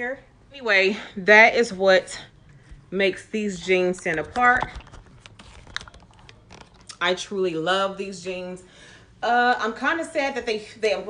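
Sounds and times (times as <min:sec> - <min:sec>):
camera handling clicks and rustling: 0:04.0 - 0:06.9.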